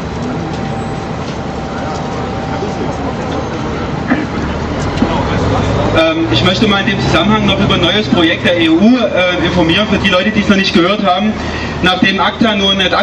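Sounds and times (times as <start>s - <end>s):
indistinct voices: 0.0s - 13.0s
traffic rumble: 0.0s - 13.0s.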